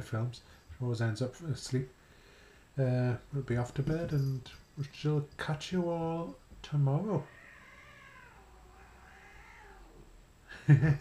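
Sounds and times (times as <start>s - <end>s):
cats yowling: 7.2s - 10.1s
man laughing: 10.5s - 11.0s.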